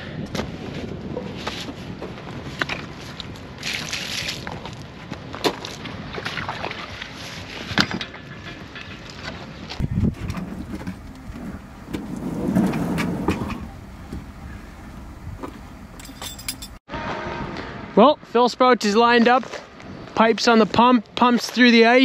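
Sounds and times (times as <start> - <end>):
wind on microphone: 9.7 - 16.1
hose dragging scrape: 9.8 - 15.6.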